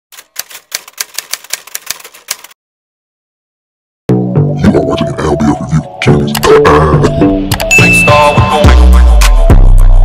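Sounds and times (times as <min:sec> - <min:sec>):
typewriter keys clacking: 0:00.1 - 0:02.6.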